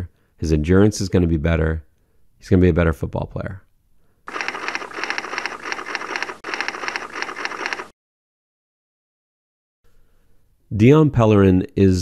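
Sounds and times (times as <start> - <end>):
rapid mechanical clattering: 4.3 - 7.9.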